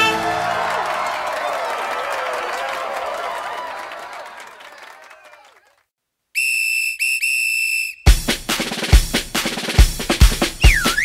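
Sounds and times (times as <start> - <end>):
whistle blasts: 6.4 - 8.2, 10.6 - 11.0
drum beat: 8.1 - 11.0.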